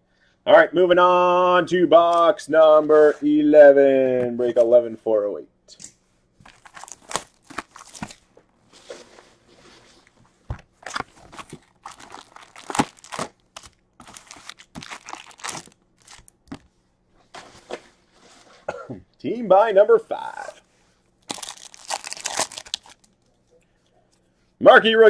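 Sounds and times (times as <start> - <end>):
shrink-wrap tearing: 6.4 - 8.2, 10.8 - 16.6, 21.2 - 23.2
foil packs crinkling: 6.4 - 8.5, 10.5 - 16.6, 21.2 - 23.2.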